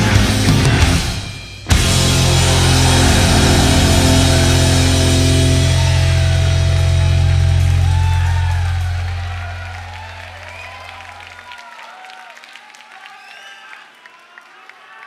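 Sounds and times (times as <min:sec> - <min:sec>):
distorted electric guitars and bass: 0:00.0 - 0:11.0
audience cheering and whistling: 0:01.7 - 0:15.0.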